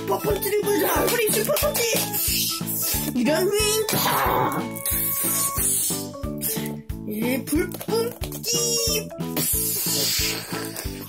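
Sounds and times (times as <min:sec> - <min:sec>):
bouncy children's music: 0:00.0 - 0:11.0.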